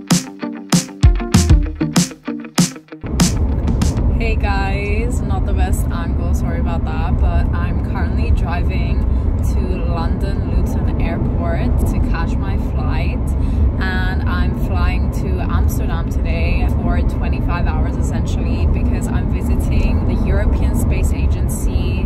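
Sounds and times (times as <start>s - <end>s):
woman speaking: 4.2s - 22.0s.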